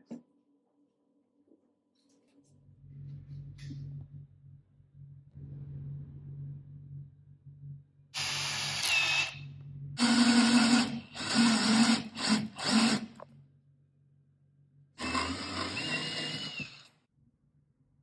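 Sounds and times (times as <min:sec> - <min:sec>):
cordless drill boring into wood: 0:08.2 - 0:09.4, 0:10.0 - 0:13.2, 0:15.0 - 0:16.9.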